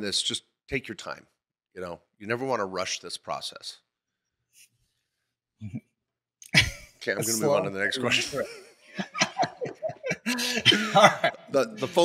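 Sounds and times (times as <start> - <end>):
men laughing: 6.6 - 12.0.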